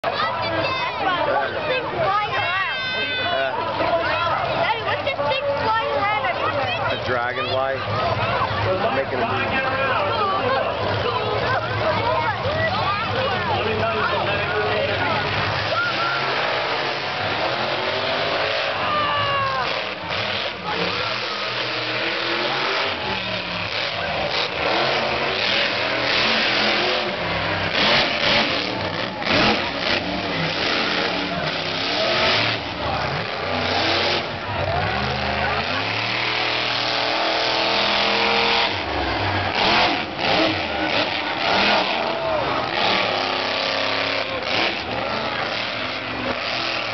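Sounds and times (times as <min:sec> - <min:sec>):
monster truck engine revving: 0:00.0 - 0:46.9
spectators' voices: 0:00.0 - 0:46.9.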